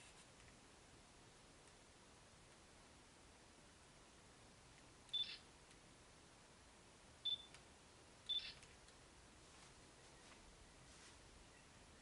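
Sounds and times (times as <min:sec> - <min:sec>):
faint room noise: 0:00.0 - 0:12.0
short high-pitched chirps: 0:05.1 - 0:05.4, 0:08.3 - 0:08.6.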